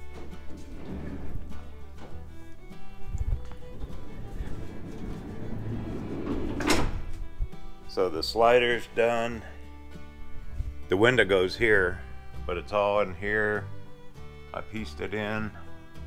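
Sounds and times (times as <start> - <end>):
background music: 0.0 - 16.0
sliding van door knock: 3.8 - 7.1.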